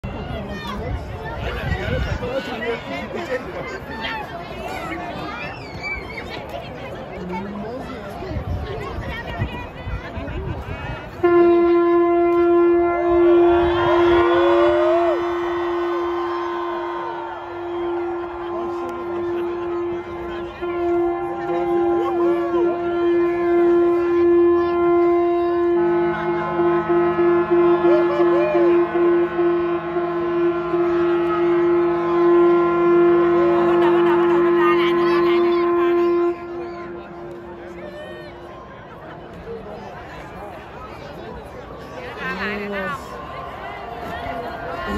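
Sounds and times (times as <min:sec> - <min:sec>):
lower ship's horn: 0:11.1 - 0:38.6
ship's horn long blast: 0:11.1 - 0:38.6.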